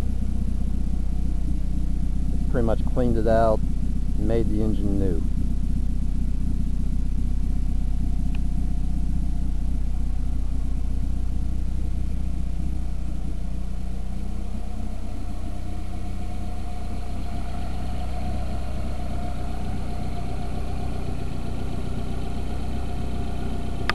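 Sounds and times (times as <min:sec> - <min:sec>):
car engine idling: 0:00.0 - 0:23.9.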